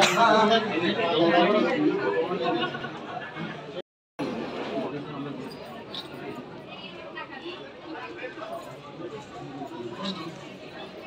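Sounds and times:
chatter of people talking: 0.0 - 11.0.

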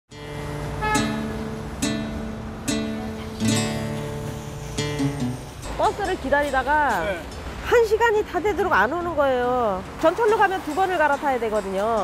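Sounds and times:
acoustic guitar strummed chords: 0.1 - 5.9.

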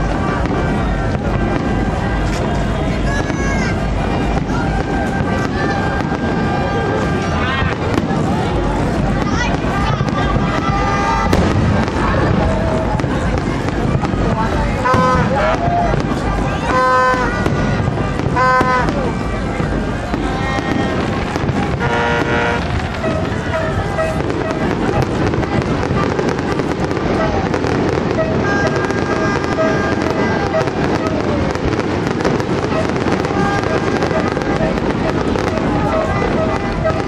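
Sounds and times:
crowd voices: 0.0 - 37.0
fireworks bursting and crackling: 0.0 - 37.0.

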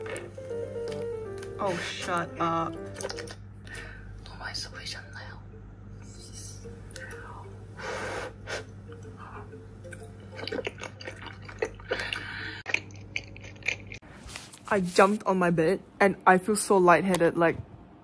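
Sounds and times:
steady low hum: 0.0 - 18.0
chewing and wet smacks: 2.9 - 3.4, 9.9 - 14.0.

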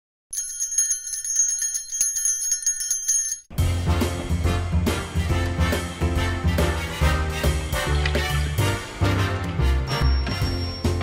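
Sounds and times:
bells jingling: 0.3 - 3.6, 9.9 - 11.0.

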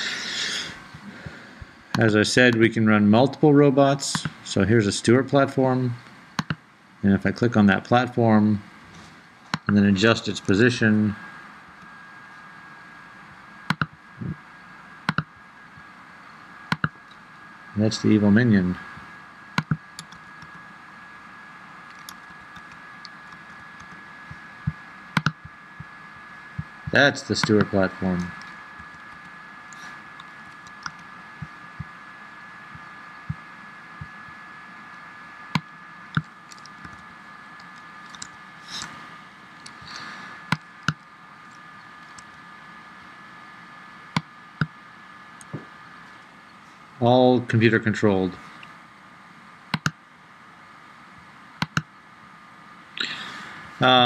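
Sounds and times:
faint high whine: 0.0 - 54.0
faint two-tone hum: 0.0 - 54.0
computer mouse button clicks: 6.4 - 6.6
computer mouse clicks: 6.4 - 6.6, 13.7 - 14.0, 15.1 - 15.3, 16.7 - 17.0, 19.6 - 20.6, 21.9 - 24.4, 25.1 - 25.5, 27.4 - 31.5, 35.5 - 37.0, 37.6 - 39.0, 49.7 - 50.0, 51.6 - 51.9.

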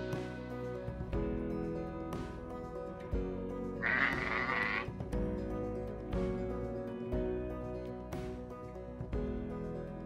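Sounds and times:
background guitar music: 0.0 - 10.0
sheep bleating: 3.8 - 4.9.

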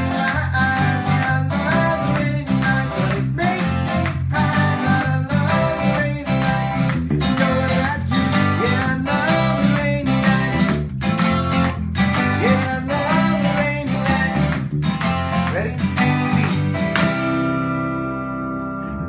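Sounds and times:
steady beat: 0.0 - 17.5
electric bass: 0.0 - 19.0
electric guitar lead lines: 0.0 - 19.0
strummed acoustic guitar: 0.0 - 19.0.

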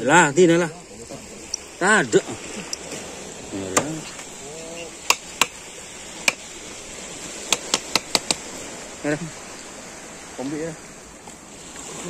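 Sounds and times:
steady background hiss: 0.0 - 12.0
sharp clicks: 7.5 - 8.4.

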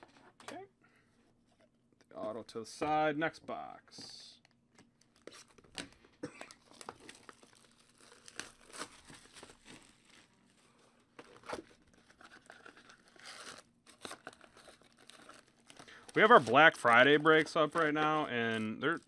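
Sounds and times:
foil packs crinkling: 5.0 - 19.0.

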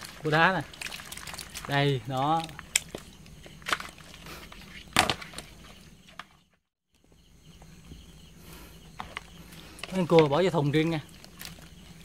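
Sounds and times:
hand rummaging among wet fish: 0.0 - 5.9, 8.9 - 12.0.

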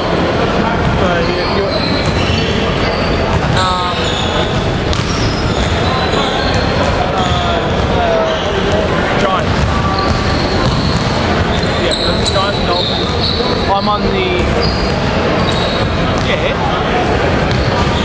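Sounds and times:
indistinct voices: 0.0 - 18.0
basketballs bouncing on hardwood: 9.5 - 11.8, 16.1 - 16.5
short high squeaks: 9.9 - 13.9, 14.5 - 16.0.

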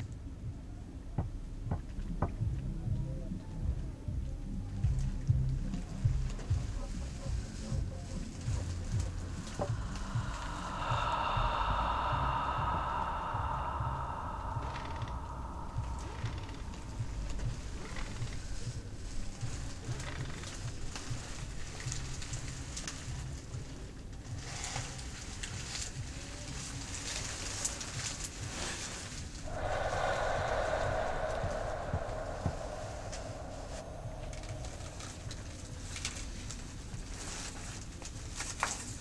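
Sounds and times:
low steady rumbling: 3.6 - 22.8, 29.4 - 37.4
sustained hum-like tone: 8.4 - 19.2, 29.4 - 36.5.

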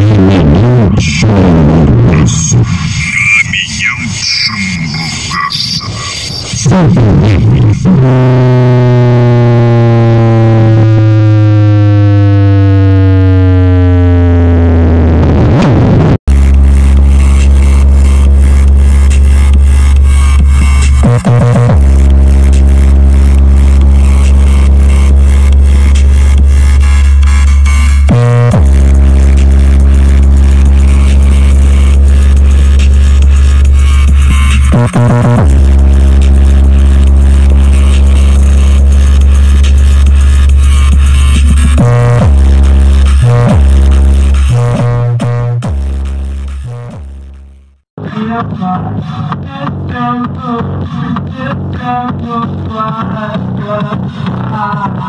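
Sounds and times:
loud electronic music with deep bass: 0.0 - 55.0.

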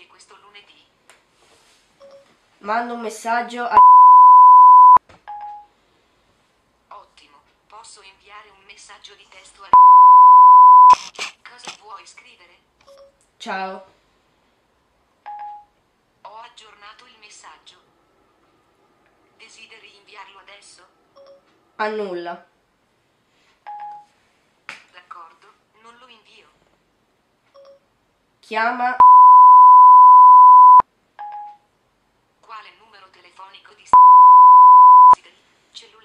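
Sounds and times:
short electronic beep: 3.8 - 5.0, 9.8 - 11.0, 29.0 - 30.8, 34.0 - 35.2
short electronic tone: 29.0 - 30.8.

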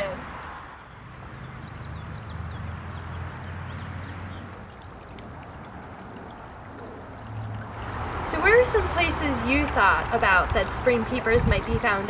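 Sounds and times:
creek water trickling: 0.3 - 12.0.

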